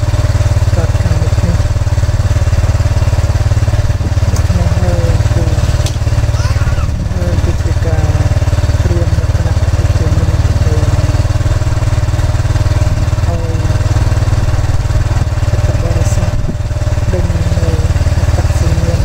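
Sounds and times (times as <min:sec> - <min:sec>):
small motorcycle engine running: 0:00.0 - 0:19.0.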